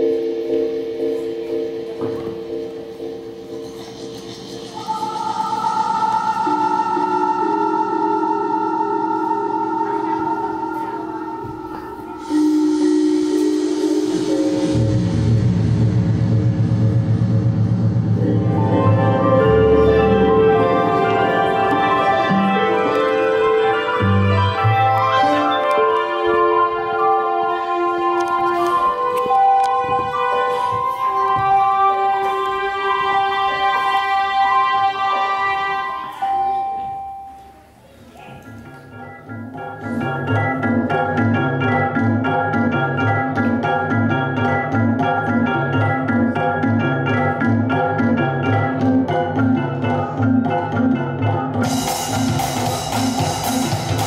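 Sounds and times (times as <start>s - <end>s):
electronic organ music: 0.0s - 54.0s.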